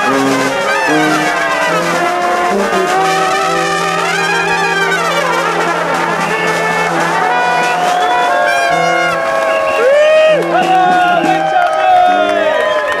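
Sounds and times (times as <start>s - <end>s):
snare drum: 0.0s - 11.8s
brass band playing: 0.0s - 12.5s.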